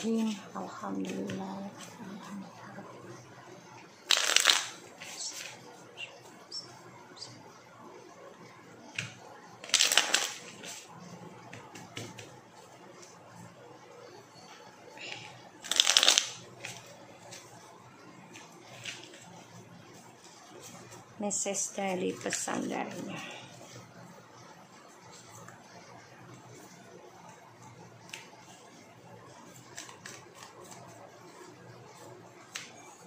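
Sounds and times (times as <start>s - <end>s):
cards riffling: 4.1s - 5.6s, 15.6s - 16.8s
cards being riffle shuffled: 4.1s - 5.7s, 9.6s - 10.8s, 15.6s - 17.5s, 29.6s - 31.0s.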